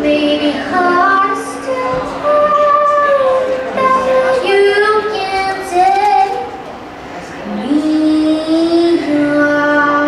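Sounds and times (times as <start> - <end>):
woman singing: 0.0 - 6.6, 7.4 - 10.0.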